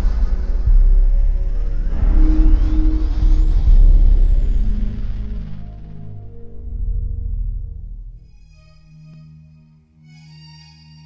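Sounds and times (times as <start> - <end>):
loud deep rumble: 0.0 - 8.4
eerie music: 0.0 - 11.0.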